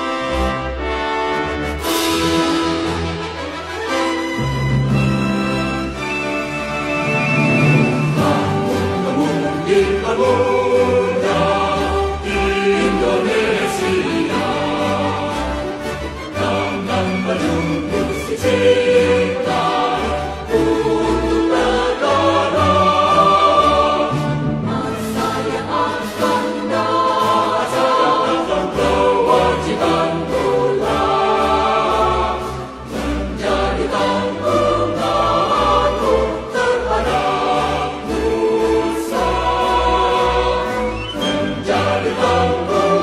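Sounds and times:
voices singing together: 6.8 - 43.0.

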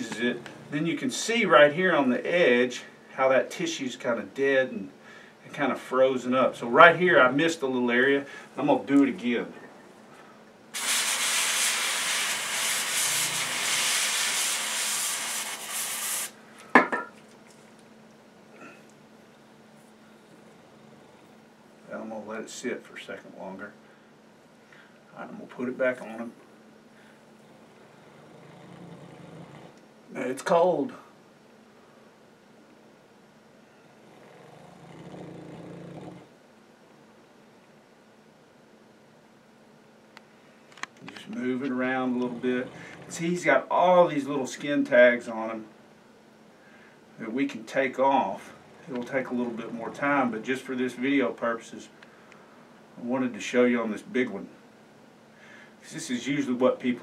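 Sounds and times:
aerosol spray hissing: 10.8 - 16.4
dog low throaty breathing: 42.2 - 43.2.

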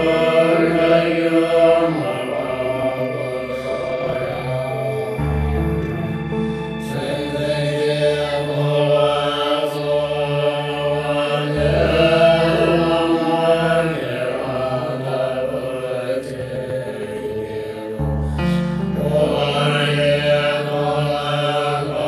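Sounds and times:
musical accompaniment: 0.0 - 10.5, 17.9 - 22.0
monks chanting: 0.0 - 22.0.

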